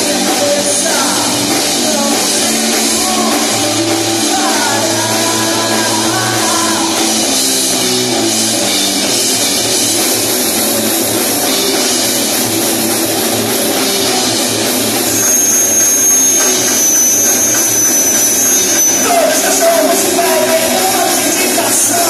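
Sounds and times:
bass guitar: 0:00.0 - 0:22.0
drum kit: 0:00.0 - 0:22.0
electric guitar: 0:00.0 - 0:22.0.

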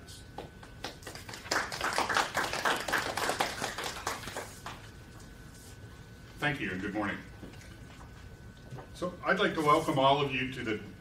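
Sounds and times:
audience applause: 0:00.8 - 0:04.7.

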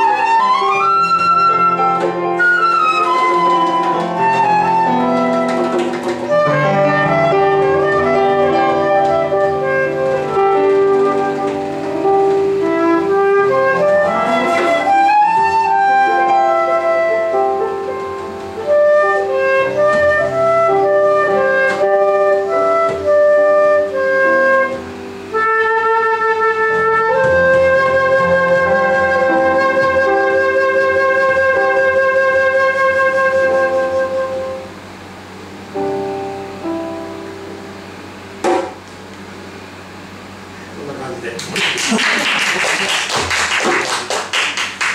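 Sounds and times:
flute melody: 0:00.0 - 0:34.9
keyboard chords: 0:00.0 - 0:40.8
sharp knock: 0:38.4 - 0:38.8.

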